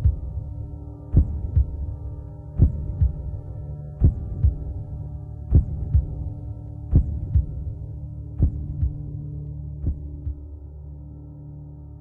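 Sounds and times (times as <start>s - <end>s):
heartbeat thumps: 0.0s - 0.5s, 1.1s - 2.0s, 2.6s - 4.9s, 5.5s - 10.6s
low steady drone: 0.0s - 12.0s.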